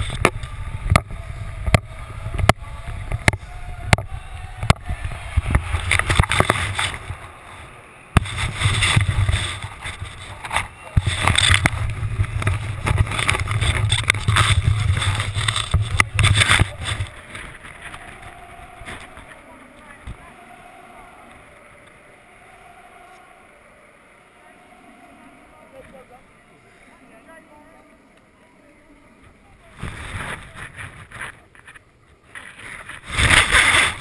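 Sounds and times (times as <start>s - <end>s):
cloth rubbing against microphone: 8.2s - 20.8s, 29.6s - 34.0s.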